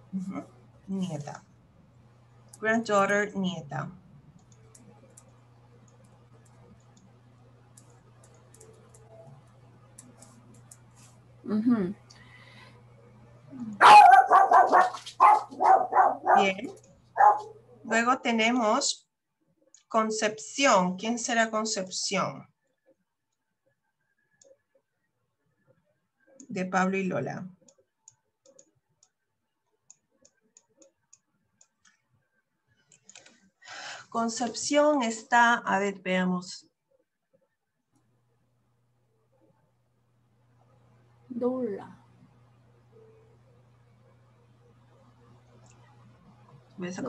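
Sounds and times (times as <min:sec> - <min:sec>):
faint steady hum: 0:00.0 - 0:47.0
computer mouse clicking: 0:04.3 - 0:07.1, 0:07.7 - 0:11.1, 0:27.6 - 0:29.2, 0:32.8 - 0:33.4
dog barking: 0:13.8 - 0:17.6.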